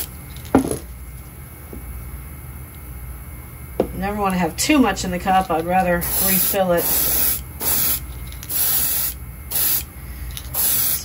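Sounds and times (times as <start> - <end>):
steady low hum: 0.0 - 11.0
tool knocking on workbench: 0.6 - 0.9.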